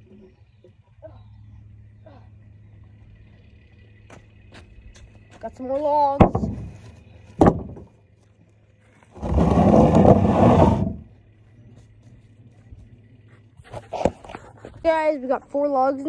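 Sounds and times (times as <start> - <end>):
log thumping into wooden trailer: 5.8 - 8.0, 9.1 - 11.1
wood knocking: 6.2 - 6.7, 7.4 - 7.9.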